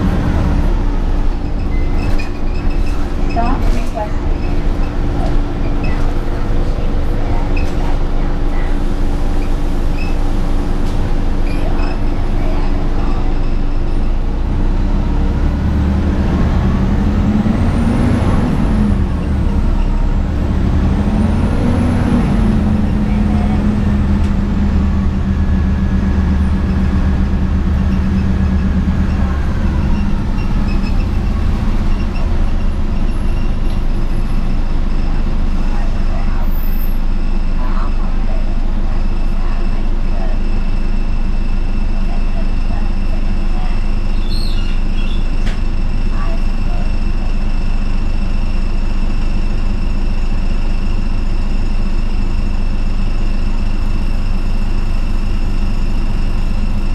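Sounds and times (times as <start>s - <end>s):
bus engine running: 0.0s - 56.9s.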